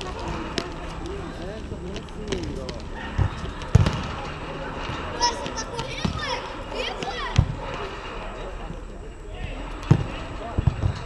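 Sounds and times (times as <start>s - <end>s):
players calling out: 0.0s - 11.0s
volleyball struck by hand: 2.3s - 4.3s.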